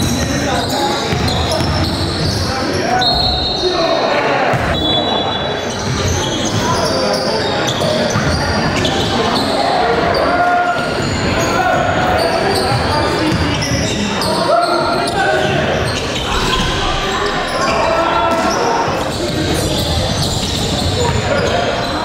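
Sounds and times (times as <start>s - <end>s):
sneaker squeaks: 0.1s - 3.9s, 4.6s - 22.0s
indistinct voices: 8.8s - 22.0s.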